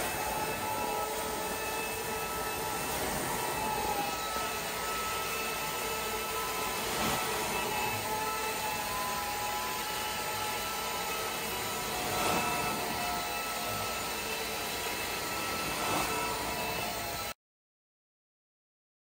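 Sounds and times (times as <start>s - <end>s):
carpet extractor vacuum rushing: 0.0s - 17.4s.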